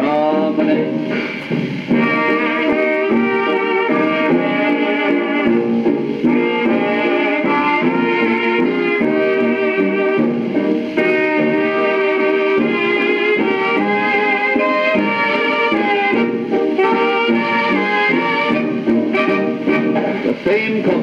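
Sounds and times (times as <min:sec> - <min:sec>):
old-time dance band waltz record: 0:00.0 - 0:21.0.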